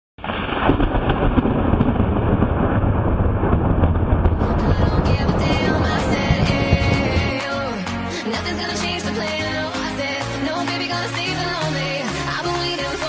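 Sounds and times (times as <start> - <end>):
loud muffled rumble: 1.4 - 7.8
music: 4.4 - 13.0.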